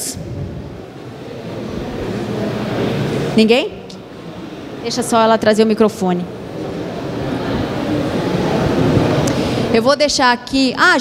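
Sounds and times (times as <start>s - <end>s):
large hall room noise: 0.0s - 11.0s.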